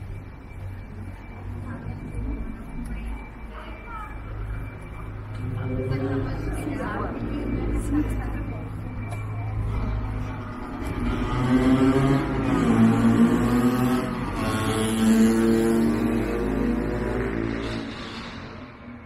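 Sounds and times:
motorcycle accelerating past: 0:10.9 - 0:18.6
motor scooter accelerating past: 0:10.9 - 0:18.7.

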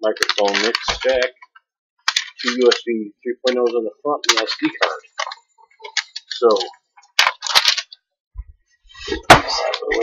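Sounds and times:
packaging rustling scrape: 0:02.1 - 0:02.8
packaging click: 0:03.5 - 0:08.0.

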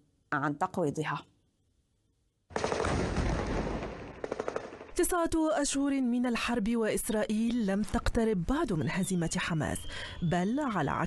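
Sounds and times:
gunfire: 0:02.5 - 0:05.0
sharp gunshots: 0:02.5 - 0:05.0.

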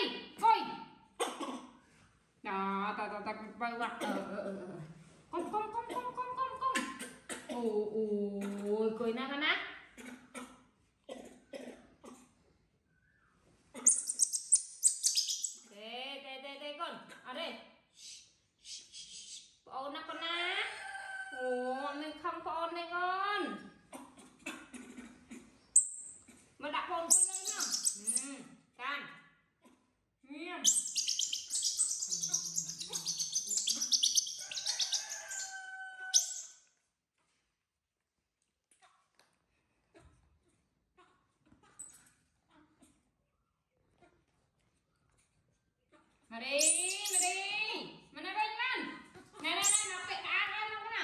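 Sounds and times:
baby monkey squealing: 0:13.8 - 0:15.6, 0:27.1 - 0:28.3, 0:30.7 - 0:36.5, 0:46.6 - 0:47.4, 0:49.6 - 0:49.9.

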